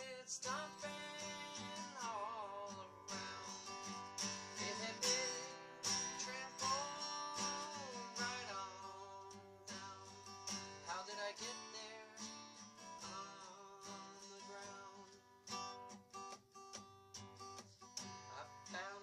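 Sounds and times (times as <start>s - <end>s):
man singing: 0.0s - 15.2s, 18.3s - 19.0s
acoustic guitar strumming: 0.0s - 19.0s.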